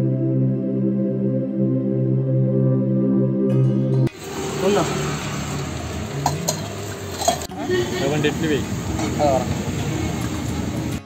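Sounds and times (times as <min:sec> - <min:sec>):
cooking hiss: 0:04.1 - 0:11.0
background voices: 0:04.2 - 0:11.0
metal utensils clinking: 0:04.2 - 0:11.0.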